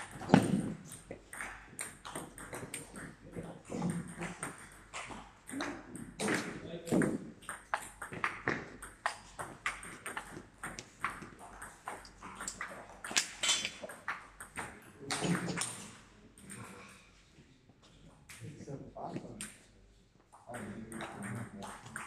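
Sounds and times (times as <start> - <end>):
table tennis ball clicking: 6.9 - 15.8.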